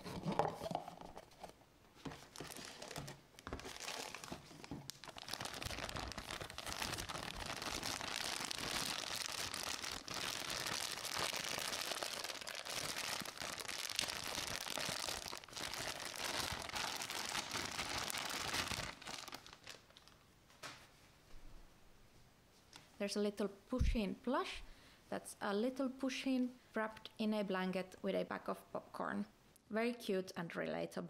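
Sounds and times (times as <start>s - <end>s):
plastic bag crinkling: 2.1s - 20.2s
plastic bag tearing: 2.3s - 20.2s.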